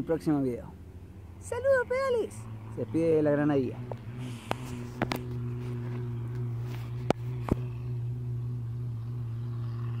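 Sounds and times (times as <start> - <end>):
steady low hum: 3.7 - 10.0.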